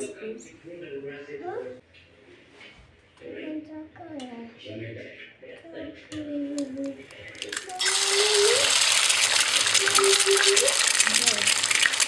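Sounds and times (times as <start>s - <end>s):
bread sizzling on hot plate: 7.4s - 12.0s.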